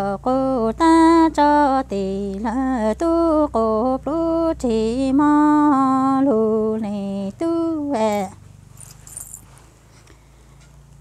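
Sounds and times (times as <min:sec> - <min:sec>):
woman singing unaccompanied: 0:00.0 - 0:08.5.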